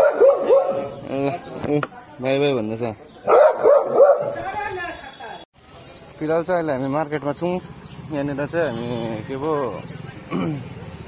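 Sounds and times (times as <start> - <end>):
dog barking: 0.0 - 1.0, 3.2 - 4.4.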